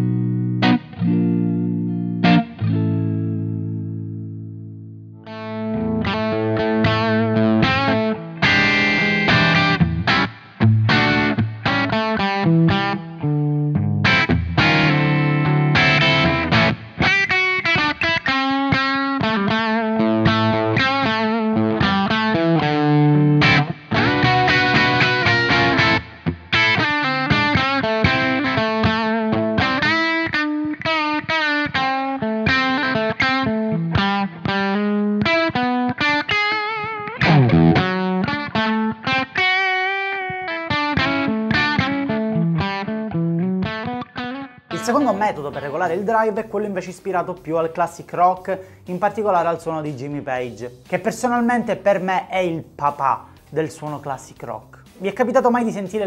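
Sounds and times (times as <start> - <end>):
electric guitar lead and chords: 0.0 - 56.0.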